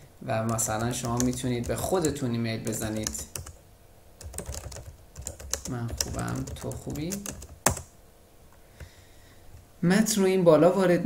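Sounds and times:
keyboard typing clicks: 0.5 - 3.6, 4.2 - 7.9.

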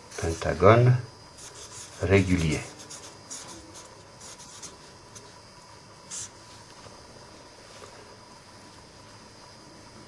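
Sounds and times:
pen scratching on paper: 1.4 - 5.3, 6.1 - 6.3.

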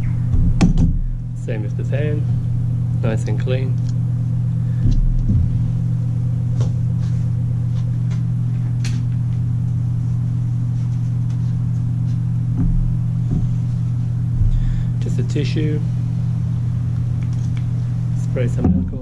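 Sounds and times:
steady low hum: 0.0 - 19.0
soft thumps: 12.5 - 13.7.

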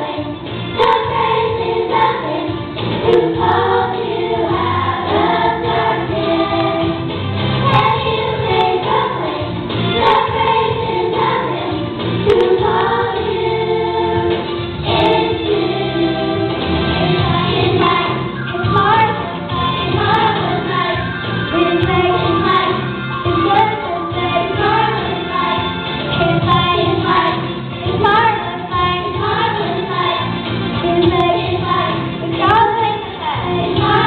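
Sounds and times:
girls singing together: 0.0 - 34.0
musical accompaniment: 0.0 - 34.0
girl singing into microphone: 17.2 - 25.6, 26.2 - 34.0.

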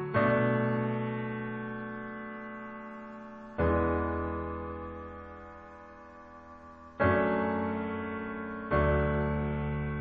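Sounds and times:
sustained electric piano chord: 0.0 - 10.0.

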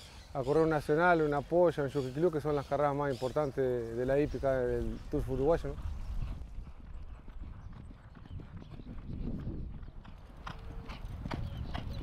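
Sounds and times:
horse hoofbeats on sand: 4.2 - 12.0.

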